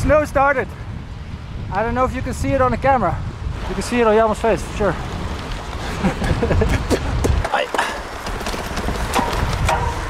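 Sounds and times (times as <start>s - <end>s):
wind buffeting microphone: 0.0s - 10.0s
bicycle rolling: 3.5s - 10.0s.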